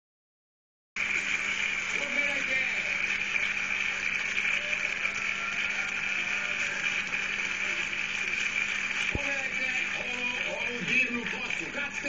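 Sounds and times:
faint television programme: 1.0s - 12.0s.

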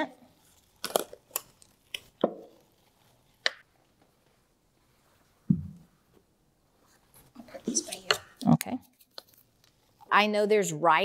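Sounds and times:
soft thump: 5.5s - 5.8s.

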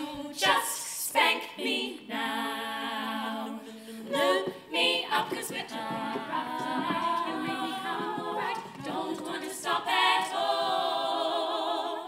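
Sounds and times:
women singing in close harmony: 0.0s - 12.0s.

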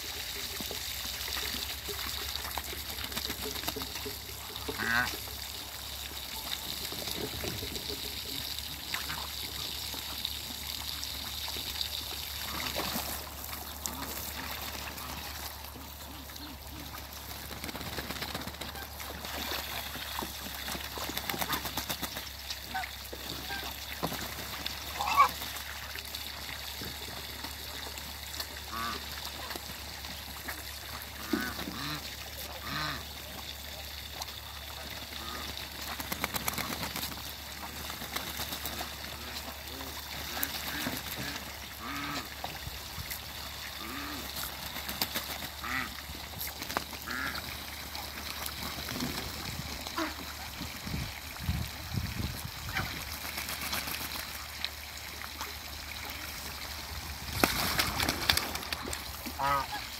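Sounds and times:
ducks splashing in water: 0.0s - 59.9s
water trickling: 0.0s - 59.9s
geese and ducks honking: 4.0s - 5.3s, 12.3s - 17.1s, 22.7s - 23.9s, 24.9s - 25.5s, 28.6s - 29.5s, 31.2s - 33.1s, 35.1s - 35.6s, 38.8s - 42.4s, 43.6s - 44.5s, 45.6s - 46.0s, 47.0s - 48.2s, 49.9s - 50.4s, 58.8s - 59.9s.

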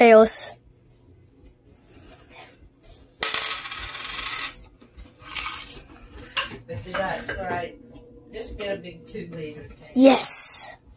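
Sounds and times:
coin clinking on wooden table: 3.2s - 4.7s
coin spinning metallic rattle: 3.2s - 5.8s.

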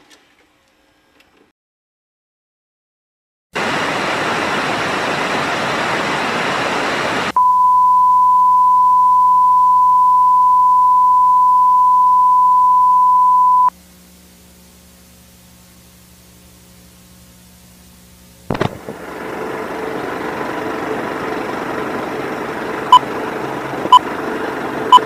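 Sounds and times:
static hiss: 3.6s - 7.4s, 13.7s - 19.0s
faint hum: 6.8s - 20.5s.

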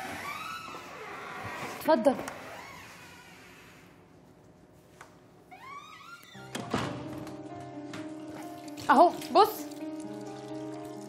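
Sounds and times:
door creaking open: 0.0s - 3.8s, 5.5s - 7.4s.

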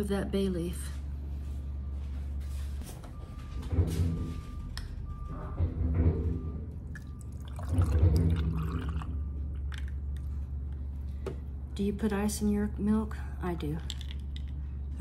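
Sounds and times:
low hum: 0.0s - 15.0s
milk glugging from jug: 6.9s - 9.9s.

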